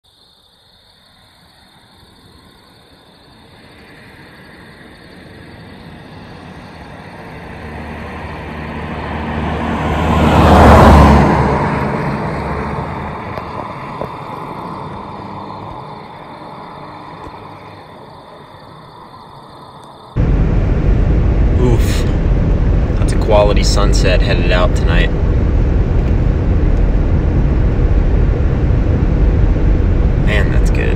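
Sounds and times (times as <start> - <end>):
vehicle passing by: 5.8 - 16.2, 20.2 - 30.9
steady high-pitched tone: 20.1 - 30.9.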